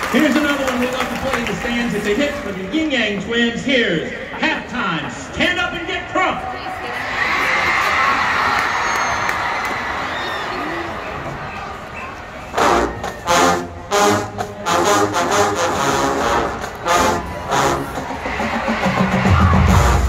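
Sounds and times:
crowd noise: 0.0 - 20.0
marching band punched chords: 12.5 - 20.0.

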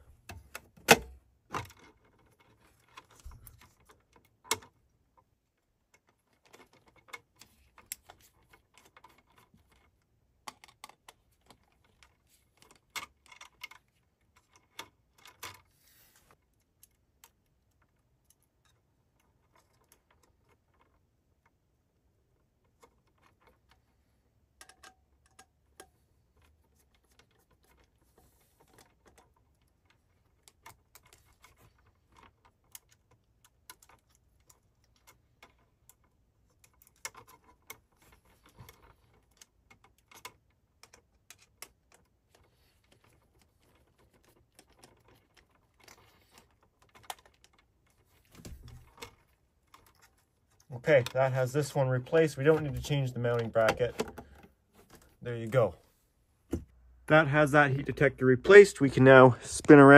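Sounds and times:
small plastic clicks and rustles: 0.0 - 59.7.

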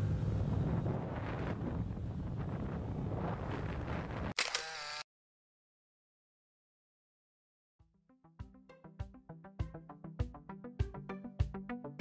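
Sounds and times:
wind rushing over microphone: 0.0 - 4.4.

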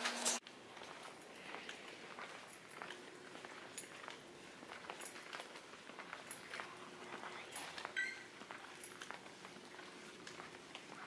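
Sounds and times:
brief high-pitched tone: 8.0 - 8.3.

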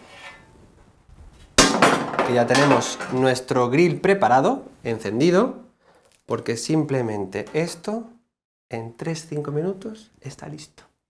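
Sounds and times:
metal baking tray clanging: 1.6 - 3.4.

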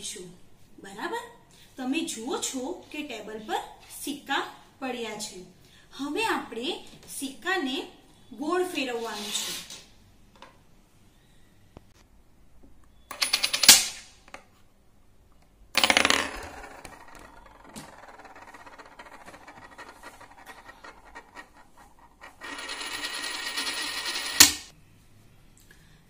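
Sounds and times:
coin spinning on wooden table: 13.1 - 13.8, 15.8 - 24.7
coin clacking flat: 13.1 - 14.0, 15.8 - 24.7.

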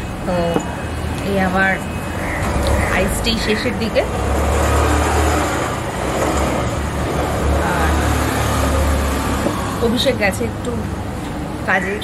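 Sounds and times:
tyre and road noise: 0.0 - 12.0.

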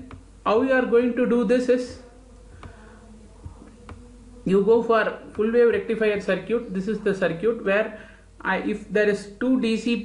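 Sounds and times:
faint buzzing hum: 0.0 - 10.0.

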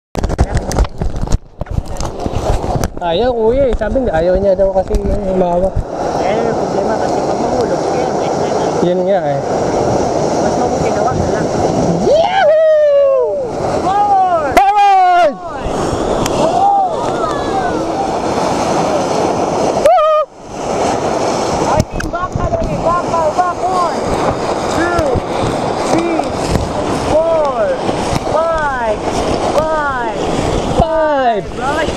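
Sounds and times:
roar of rushing river water: 0.2 - 31.9
people shouting and whooping: 12.0 - 18.2, 19.8 - 20.4.

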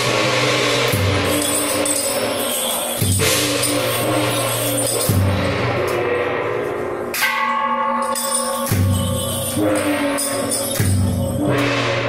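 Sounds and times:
gong ringing: 0.0 - 12.0.

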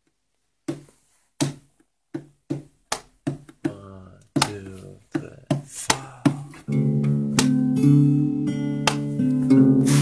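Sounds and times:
acoustic guitar strumming: 6.7 - 10.0.

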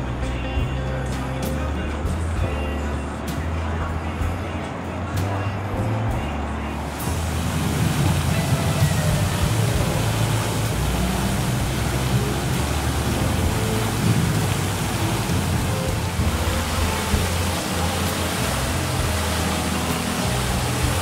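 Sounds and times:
fountain jets splashing: 0.0 - 21.0
low rumble: 0.0 - 21.0.

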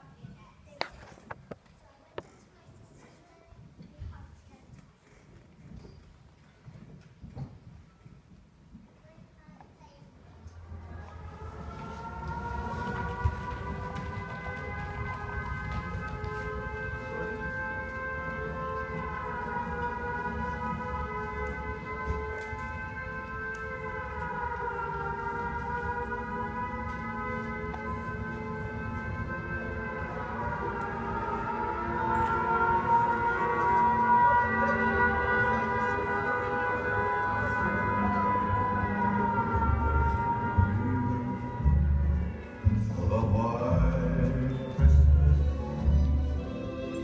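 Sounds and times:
air-raid siren wailing: 10.4 - 43.2.

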